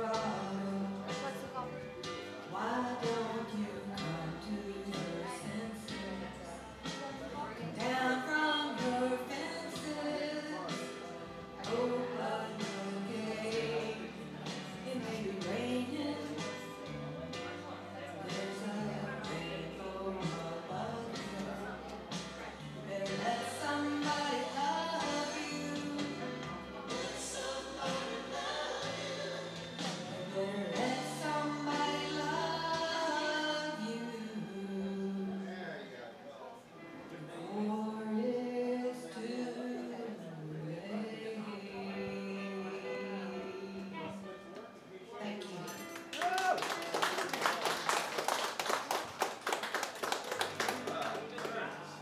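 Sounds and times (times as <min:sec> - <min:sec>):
woman singing a slow ballad: 0:00.0 - 0:01.6, 0:02.4 - 0:16.9, 0:18.2 - 0:22.0, 0:22.8 - 0:35.5, 0:37.2 - 0:44.3
audience clapping: 0:45.9 - 0:52.0.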